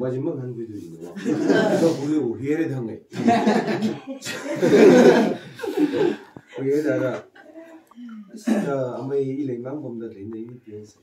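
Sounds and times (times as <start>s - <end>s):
people talking: 0.0s - 11.0s
people chuckling: 3.2s - 7.8s.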